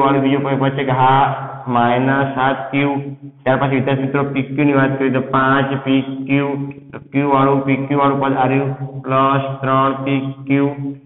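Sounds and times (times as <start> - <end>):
man speaking in sing-song way: 0.0 - 11.0.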